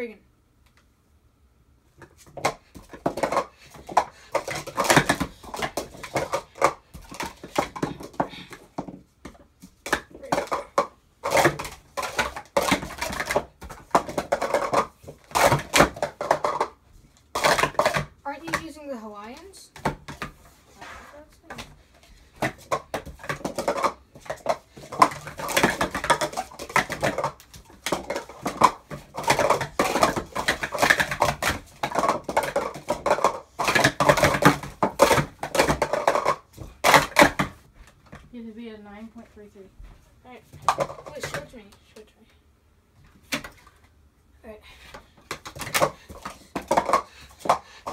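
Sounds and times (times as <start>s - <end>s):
plastic cups clattering: 2.0s - 38.3s, 40.5s - 41.8s, 43.1s - 43.9s, 44.8s - 47.9s.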